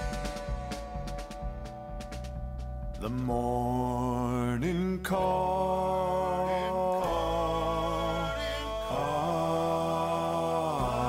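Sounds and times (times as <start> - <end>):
low sustained bass: 0.0 - 11.0
person singing long note: 3.0 - 11.0.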